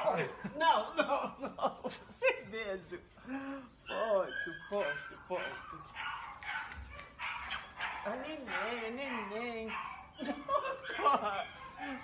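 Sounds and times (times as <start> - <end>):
woman laughing: 0.2 - 2.5, 10.2 - 12.0.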